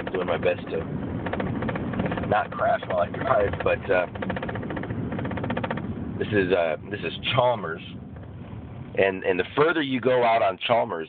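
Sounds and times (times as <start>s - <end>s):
car engine drone from inside cabin: 0.0s - 11.0s.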